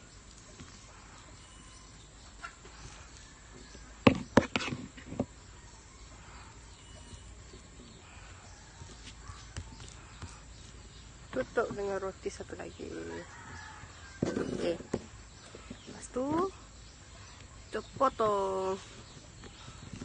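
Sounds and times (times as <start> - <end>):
faint outdoor background: 0.0 - 20.0.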